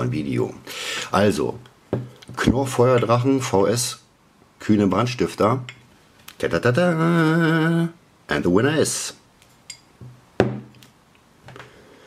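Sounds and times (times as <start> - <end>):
glass bottle knocking on wood: 10.0 - 10.7.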